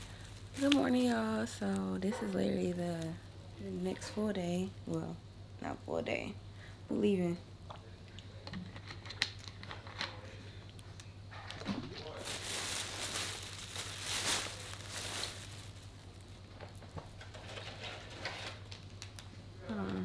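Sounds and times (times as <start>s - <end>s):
plastic bag crinkling: 0.0s - 4.4s, 11.6s - 19.3s.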